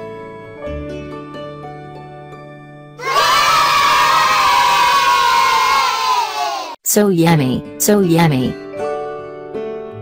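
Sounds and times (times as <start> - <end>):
children cheering: 3.0 - 6.8.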